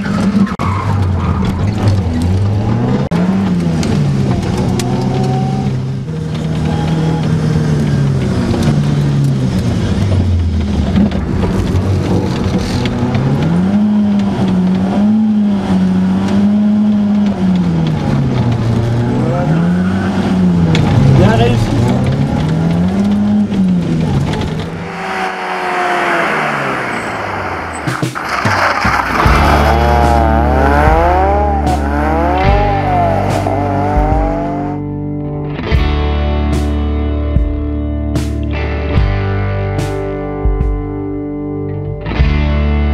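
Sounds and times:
car engine revving: 0:00.0 - 0:35.1.

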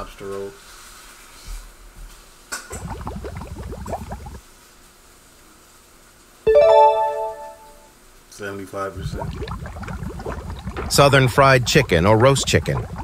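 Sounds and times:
bright chime chord: 0:06.5 - 0:07.9.

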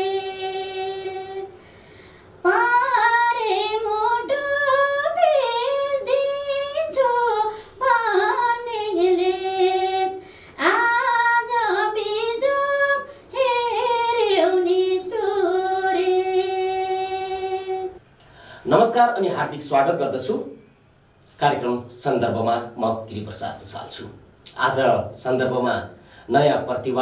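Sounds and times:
woman singing unaccompanied: 0:00.0 - 0:01.6, 0:02.4 - 0:18.0.

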